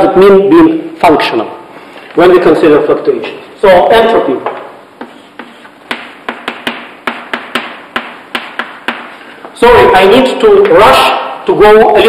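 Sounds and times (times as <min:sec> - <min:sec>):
chalk tapping on blackboard: 0:04.4 - 0:09.2.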